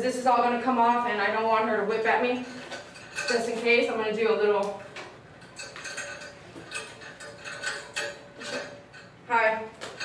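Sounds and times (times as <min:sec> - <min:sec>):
metal chain clinking and rattling: 0:02.3 - 0:04.0, 0:04.8 - 0:09.2.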